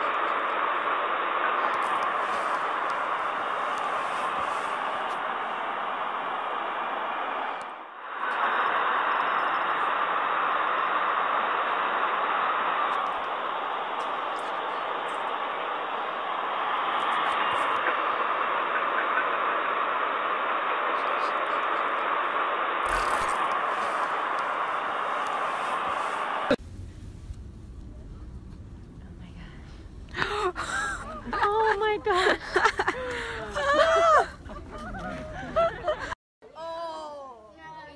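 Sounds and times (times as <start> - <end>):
steady rushing noise: 0.0 - 28.0.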